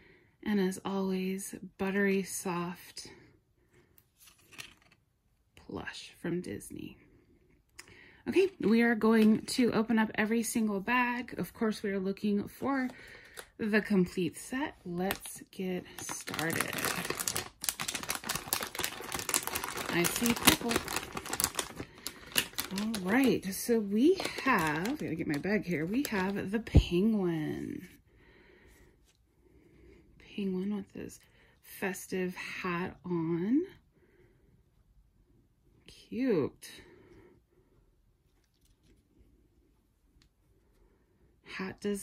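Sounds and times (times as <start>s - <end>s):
foil bag crinkling: 14.8s - 26.6s.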